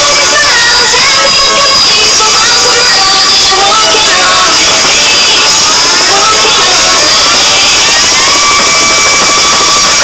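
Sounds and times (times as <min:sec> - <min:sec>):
harsh noisy dance music: 0:00.0 - 0:10.0.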